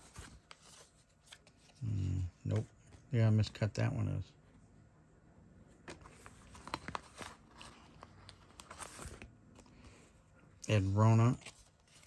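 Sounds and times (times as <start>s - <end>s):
plastic pocket page crinkling: 5.9s - 10.0s, 10.8s - 12.0s.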